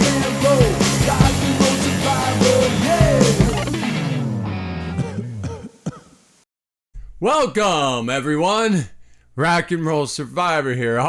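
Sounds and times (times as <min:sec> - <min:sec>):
rock music: 0:00.0 - 0:05.2
man clearing throat: 0:04.9 - 0:06.2.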